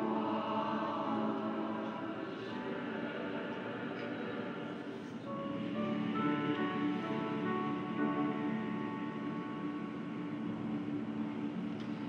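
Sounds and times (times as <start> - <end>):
mixed choir singing softly: 0.0 - 12.0.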